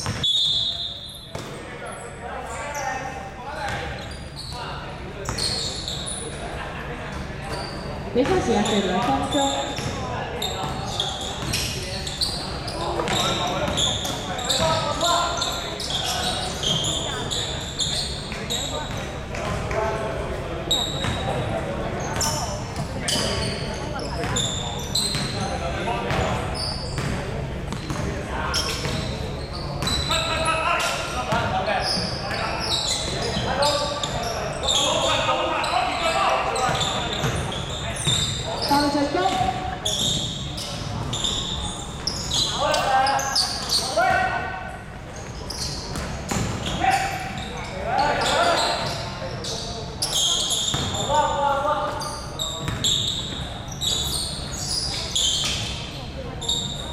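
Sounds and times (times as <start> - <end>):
shoe squeaks: 0.0 - 6.6, 7.4 - 19.6, 20.6 - 56.9
players calling and shouting: 0.0 - 56.8
basketball bouncing on wooden court: 8.2 - 10.0, 50.7 - 51.0, 52.6 - 52.9.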